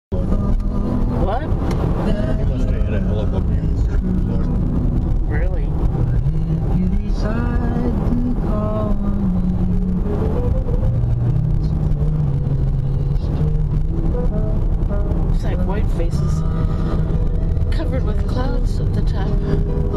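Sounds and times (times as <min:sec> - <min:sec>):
car road and engine noise: 0:00.1 - 0:19.9.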